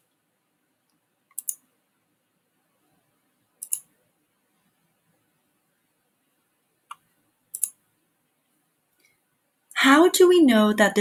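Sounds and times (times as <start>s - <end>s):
computer mouse button clicking: 1.3s - 1.6s, 3.6s - 3.9s, 6.9s - 7.8s.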